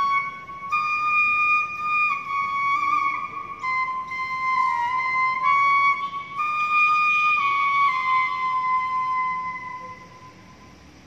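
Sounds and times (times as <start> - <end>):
bamboo flute long note: 0.0 - 10.8
faint room noise: 0.0 - 11.0.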